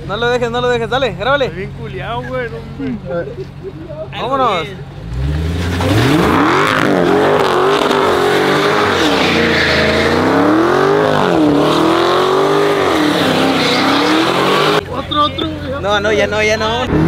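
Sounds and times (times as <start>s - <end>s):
car engine revving hard: 5.0s - 14.8s
tires spinning on wet asphalt: 5.1s - 14.8s.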